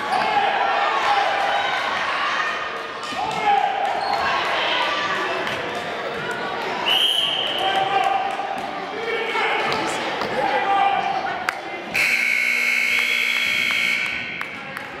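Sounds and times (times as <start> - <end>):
echoing voices in a hall: 0.0 - 15.0
scoreboard buzzer: 12.0 - 14.3.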